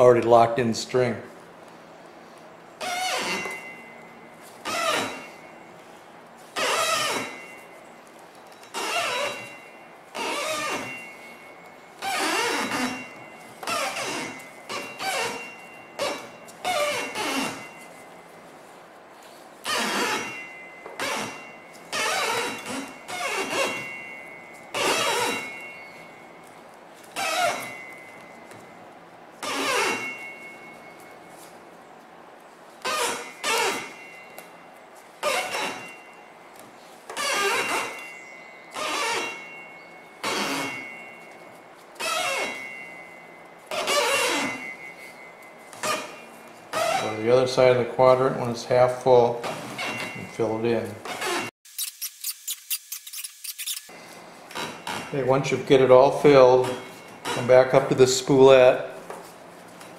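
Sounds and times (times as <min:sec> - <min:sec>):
string squeaking: 0:02.8 - 0:05.8, 0:06.4 - 0:31.8, 0:32.4 - 0:47.4, 0:49.5 - 0:55.2.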